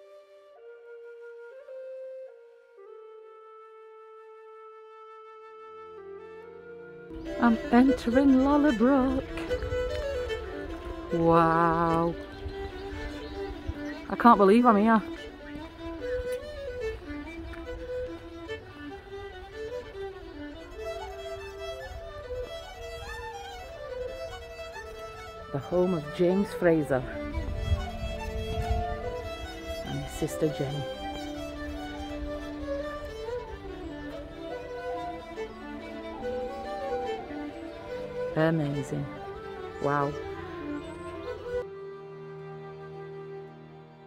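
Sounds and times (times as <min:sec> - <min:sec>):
slow flute melody: 0:00.0 - 0:44.0
low drone: 0:06.4 - 0:43.6.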